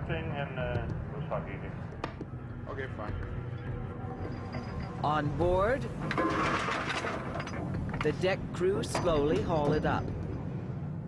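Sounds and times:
winch whirring rattle: 5.8 - 9.9.

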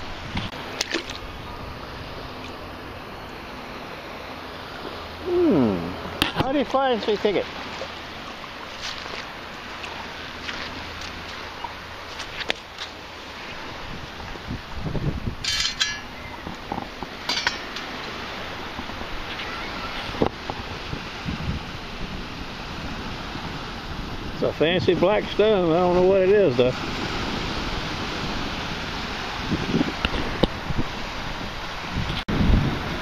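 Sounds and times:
surf: 0.0 - 33.0
wind: 0.0 - 33.0
metal sand scoop clinking: 15.4 - 16.1, 17.2 - 18.2.

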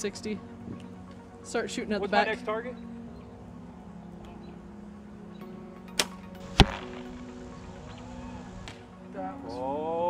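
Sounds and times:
bow string snapping: 5.9 - 7.3
arrow thudding into target: 6.0 - 7.2.

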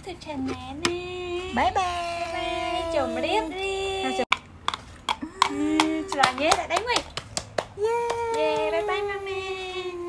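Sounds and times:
sharp taps or claps: 5.4 - 8.7.

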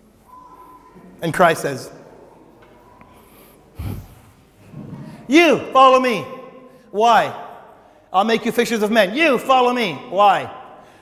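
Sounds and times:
man snorting through nose: 3.8 - 4.4.

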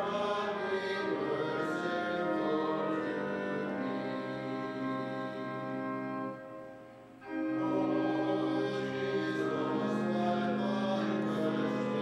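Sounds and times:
voices singing a hymn: 0.0 - 6.6, 7.2 - 12.0
organ accompaniment: 0.0 - 12.0.

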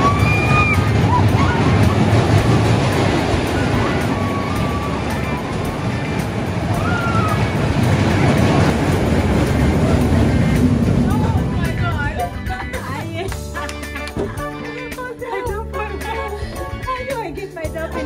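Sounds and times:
music: 0.0 - 18.0
roller coaster rumbling on track: 0.0 - 18.0
voices: 10.3 - 18.0.

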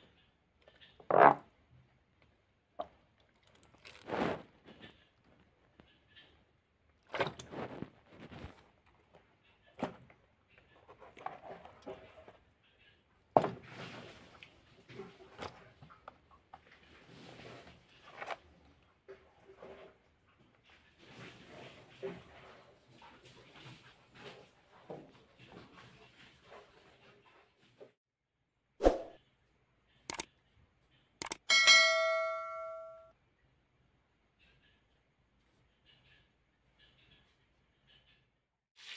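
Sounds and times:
fish handled in plastic basin: 3.3 - 4.6
bell ding: 31.5 - 33.1.

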